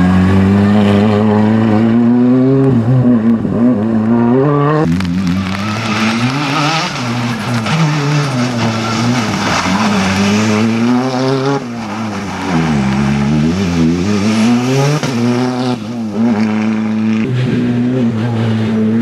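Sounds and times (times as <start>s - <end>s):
rally car engine revving: 0.0s - 19.0s.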